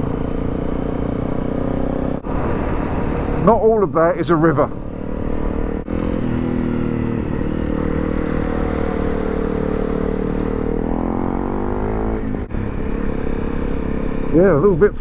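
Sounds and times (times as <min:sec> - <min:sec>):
motorcycle engine running: 0:04.7 - 0:15.0
water spray hissing from tyres: 0:08.0 - 0:10.7.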